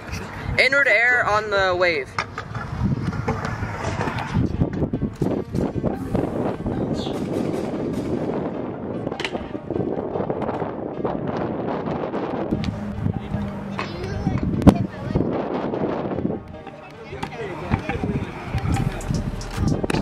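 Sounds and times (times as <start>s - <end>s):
music: 0.0s - 20.0s
wind buffeting microphone: 0.0s - 20.0s.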